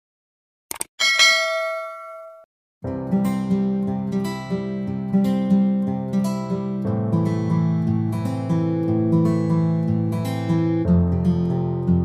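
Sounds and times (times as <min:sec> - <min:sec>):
bright bell-like ding: 0:01.0 - 0:02.5
strummed acoustic guitar music: 0:02.9 - 0:12.0.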